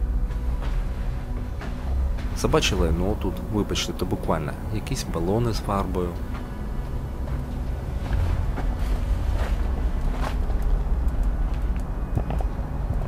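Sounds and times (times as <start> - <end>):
low rumble: 0.0 - 13.0
footsteps crunching on sand: 0.1 - 11.8.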